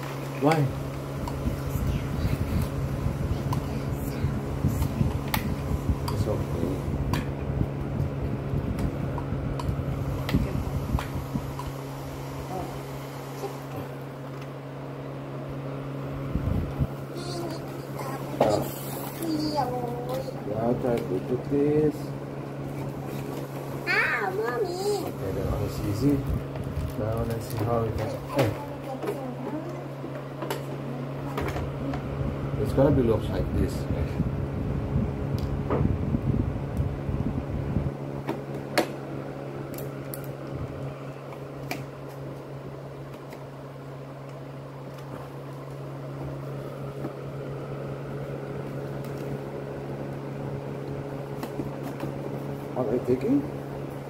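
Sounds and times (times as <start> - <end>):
low room hum: 0.0 - 54.0
child's high-pitched voice: 3.3 - 5.0, 17.1 - 20.4, 23.8 - 25.2, 28.0 - 30.0.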